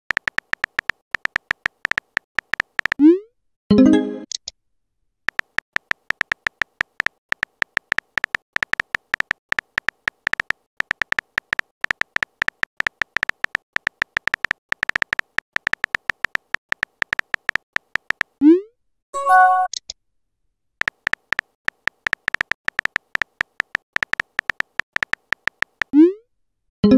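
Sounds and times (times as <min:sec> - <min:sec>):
phone keyboard typing clicks: 0:00.1 - 0:03.0, 0:05.3 - 0:18.4, 0:20.8 - 0:26.0
message notification sound: 0:03.0 - 0:04.3, 0:19.2 - 0:19.8.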